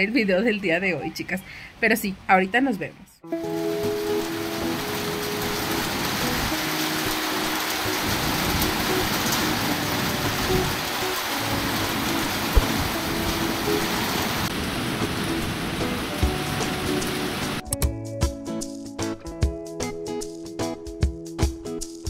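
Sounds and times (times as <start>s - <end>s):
heavy rain on pavement and cars: 3.4s - 17.6s.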